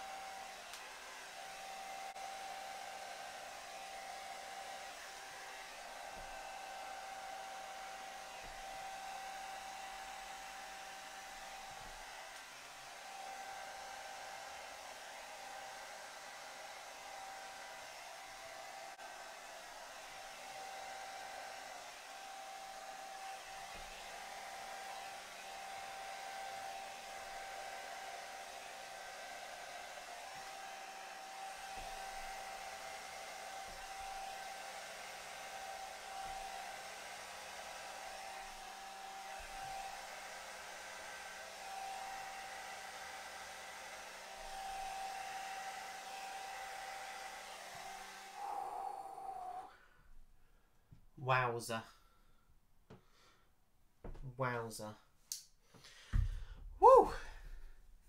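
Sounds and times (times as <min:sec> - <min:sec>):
hair dryer blowing: 0:00.0 - 0:49.8, 0:55.4 - 0:57.8.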